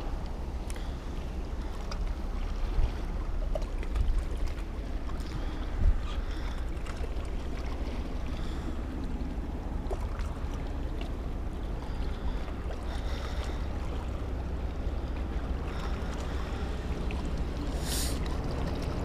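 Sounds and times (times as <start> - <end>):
small waves lapping against rocks: 0.0 - 19.0
wind buffeting microphone: 1.1 - 19.0.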